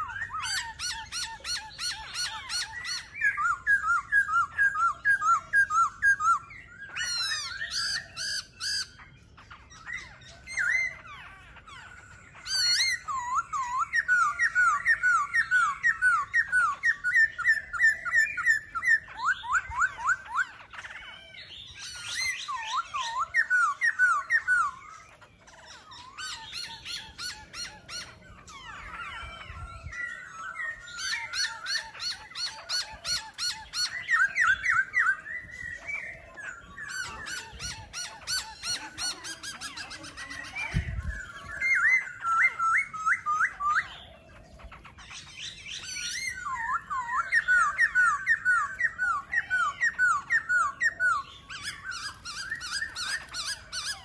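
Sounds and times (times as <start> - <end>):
birds singing whistled trills: 0.0 - 54.0.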